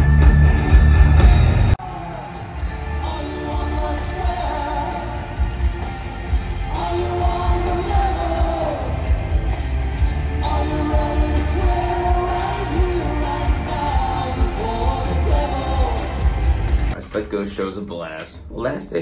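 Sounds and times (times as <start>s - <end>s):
rock band music: 0.0s - 17.0s
person singing: 1.8s - 5.6s, 6.6s - 9.2s, 10.3s - 16.4s.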